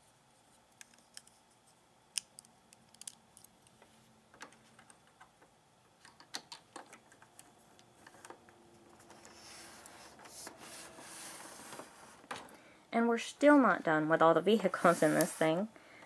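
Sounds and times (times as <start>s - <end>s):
plastic toy bricks clicking: 2.2s - 3.5s.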